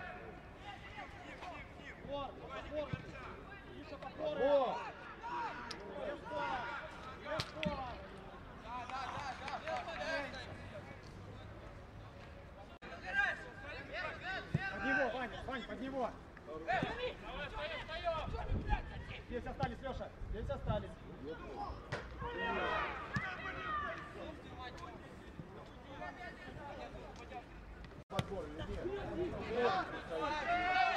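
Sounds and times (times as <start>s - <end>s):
players shouting: 0.0s - 7.9s, 12.9s - 19.0s, 21.4s - 24.6s, 28.8s - 30.9s.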